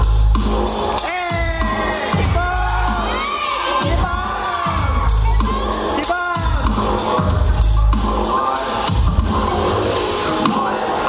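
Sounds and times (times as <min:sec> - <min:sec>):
audience cheering and shouting: 0:00.0 - 0:11.0
hip-hop track with heavy bass: 0:00.0 - 0:11.0.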